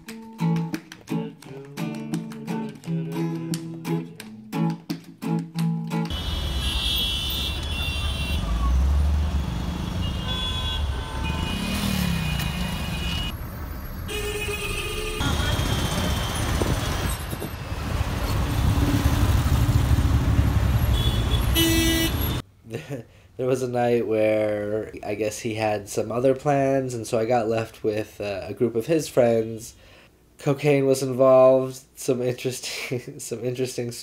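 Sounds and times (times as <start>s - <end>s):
car horns honking: 6.1s - 13.4s, 14.1s - 17.3s, 20.7s - 22.4s
traffic engines running: 6.1s - 22.4s.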